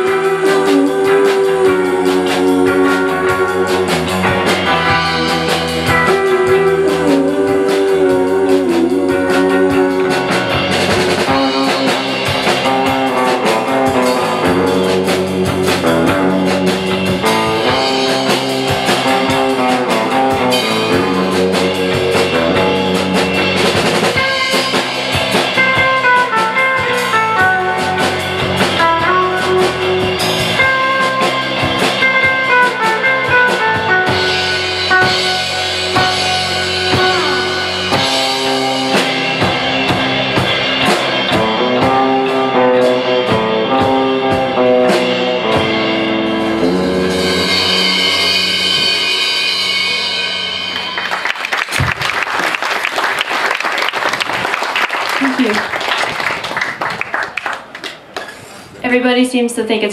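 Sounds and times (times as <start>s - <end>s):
electric guitar melody: 0.0s - 58.5s
live surf rock band: 0.0s - 58.8s
audience applause: 50.8s - 58.7s.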